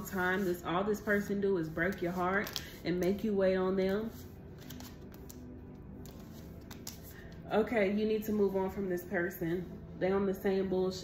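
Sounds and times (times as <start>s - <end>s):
faint background music: 0.0s - 11.0s
cards sliding and tapping on table: 6.0s - 7.1s.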